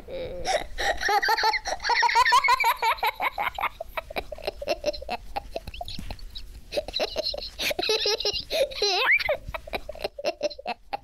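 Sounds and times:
child giggling and laughing: 0:00.0 - 0:11.0.

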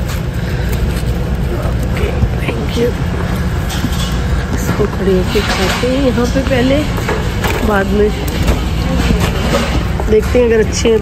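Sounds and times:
shopping cart rolling on concrete: 0:00.0 - 0:11.0.

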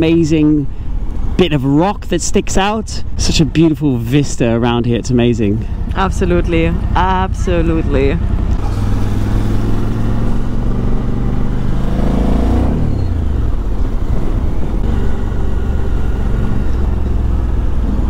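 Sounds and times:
motorcycle engine cruising: 0:00.0 - 0:18.0
road and wind noise: 0:00.0 - 0:18.0.

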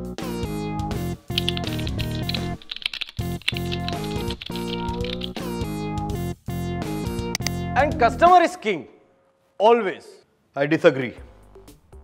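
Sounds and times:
background music: 0:00.0 - 0:08.5, 0:11.0 - 0:12.0
computer keyboard typing: 0:01.3 - 0:05.5.

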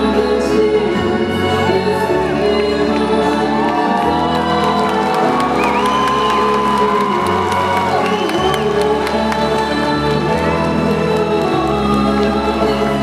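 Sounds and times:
slow performance music: 0:00.0 - 0:13.0
audience cheering: 0:03.3 - 0:09.6.

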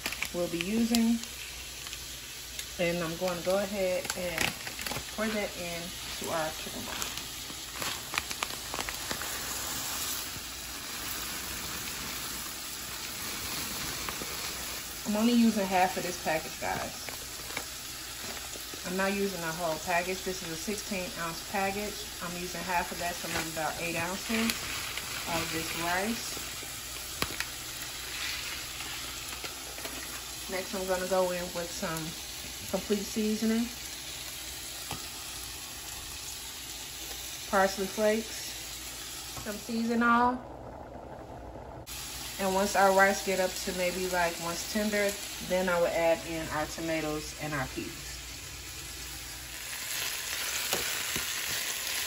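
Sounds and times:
rice grains pattering into boiling liquid: 0:00.0 - 0:39.9, 0:47.9 - 0:52.0.

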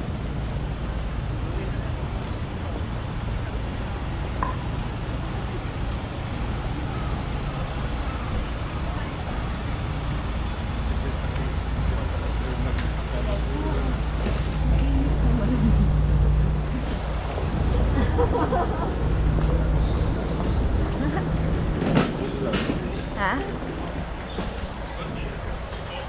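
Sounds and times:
road traffic noise: 0:00.0 - 0:26.0
voices in background: 0:01.1 - 0:18.0, 0:19.4 - 0:26.0.

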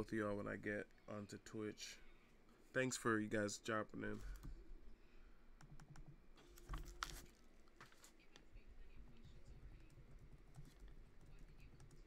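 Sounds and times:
laptop keyboard typing: 0:05.6 - 0:07.3, 0:09.0 - 0:12.0.

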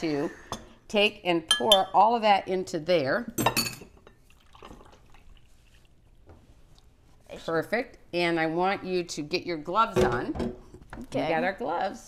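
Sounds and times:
liquid trickling into flour: 0:04.2 - 0:06.2.

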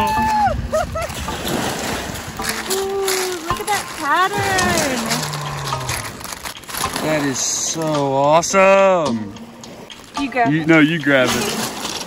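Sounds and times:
footsteps crunching on gravel: 0:01.6 - 0:07.4
person humming: 0:04.6 - 0:06.3.

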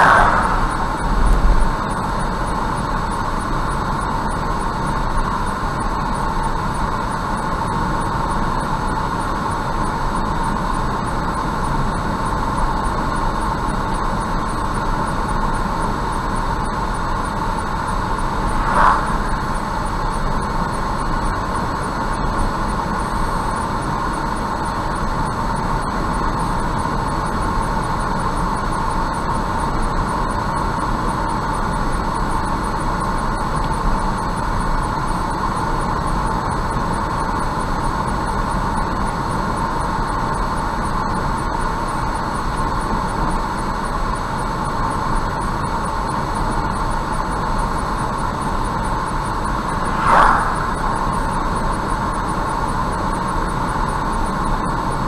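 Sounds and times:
car road and tyre noise: 0:00.0 - 0:02.8, 0:17.9 - 0:20.1, 0:49.5 - 0:52.4.

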